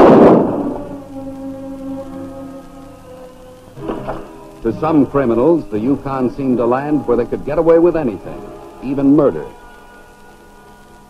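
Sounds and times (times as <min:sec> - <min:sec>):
loud crash: 0:00.0 - 0:01.0
orchestral background music: 0:00.0 - 0:11.0.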